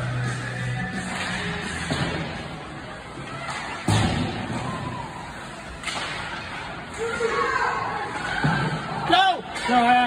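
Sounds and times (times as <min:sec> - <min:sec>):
ice rink background noise: 0:00.0 - 0:10.0
hockey stick hitting puck: 0:01.1 - 0:02.3, 0:03.4 - 0:04.6, 0:05.8 - 0:07.2.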